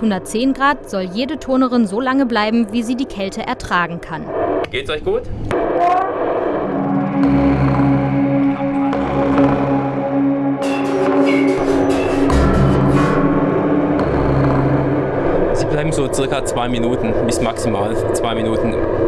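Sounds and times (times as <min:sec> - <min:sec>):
sustained chords: 0:00.0 - 0:04.7, 0:05.5 - 0:19.0
slow low bass: 0:05.3 - 0:19.0.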